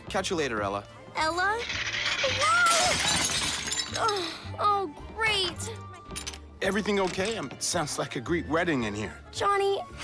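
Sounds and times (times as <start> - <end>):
dishes smashing: 1.7 - 4.1.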